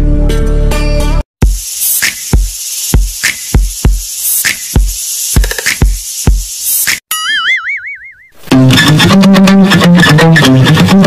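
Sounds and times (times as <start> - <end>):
electronic beat with kick drum: 1.4 - 7.1
cartoon boing: 7.1 - 8.3.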